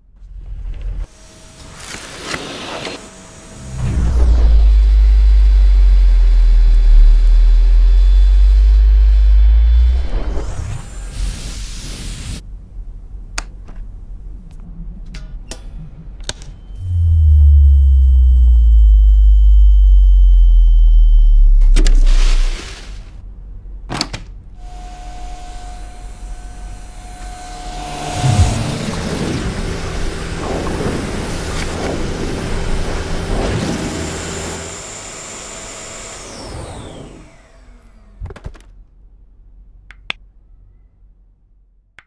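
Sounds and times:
vacuum cleaner whining: 1.0s - 12.3s, 24.6s - 38.2s
deep rumble: 3.6s - 10.6s, 16.8s - 22.6s, 25.7s - 34.8s.

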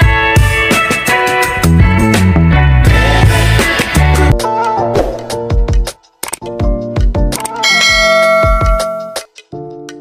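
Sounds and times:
music with drum beat: 0.0s - 10.0s
bright bell chime: 7.6s - 9.3s.

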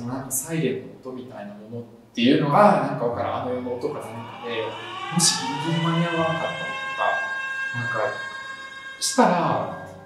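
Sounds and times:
eerie siren-like drone: 3.0s - 10.0s.

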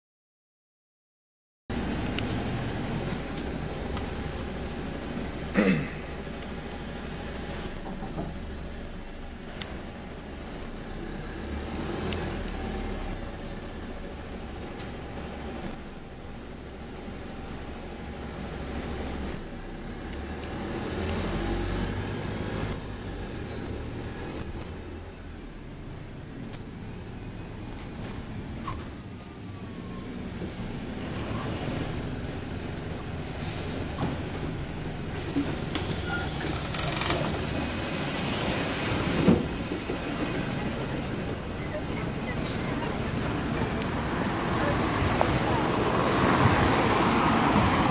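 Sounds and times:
bus engine rumble: 1.7s - 47.9s
road noise: 1.7s - 47.9s.

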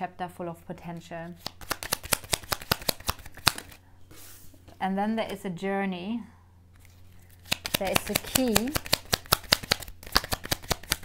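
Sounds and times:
cards being shuffled: 0.8s - 4.8s, 6.7s - 11.0s.

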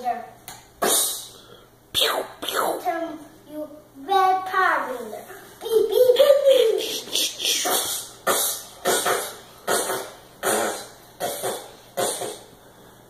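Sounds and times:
child making mouth sound effects: 0.8s - 2.9s, 6.0s - 12.5s.

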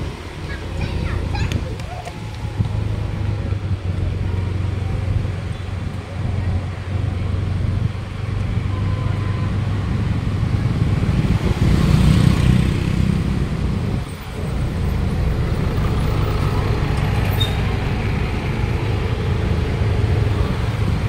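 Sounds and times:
street traffic rumble: 0.0s - 21.0s.

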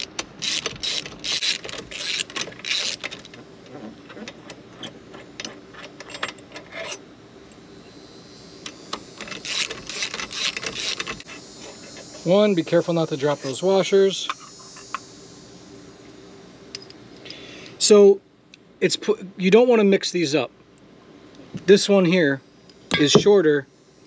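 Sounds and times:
socket ratchet clicking: 0.0s - 3.3s, 9.0s - 11.3s.

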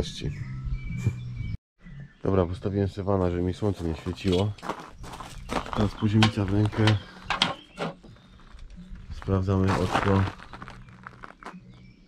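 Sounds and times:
spirit level knocking on stone tiles: 5.5s - 7.8s.

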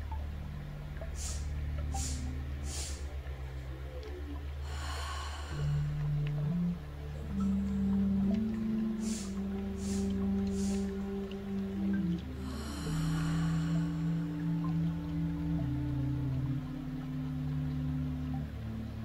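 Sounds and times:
soft background music: 0.0s - 19.0s
breathing in and out: 1.2s - 3.1s, 4.6s - 6.1s, 9.0s - 11.0s, 12.4s - 14.3s.

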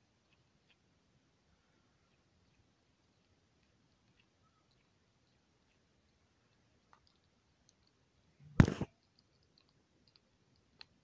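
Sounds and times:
skunk crunching dry kibble: 0.0s - 11.0s.

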